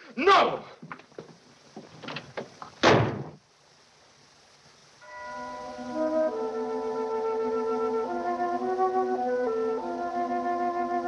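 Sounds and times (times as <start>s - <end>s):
loud thud: 2.8s - 3.4s
soft orchestral film music: 5.0s - 11.0s.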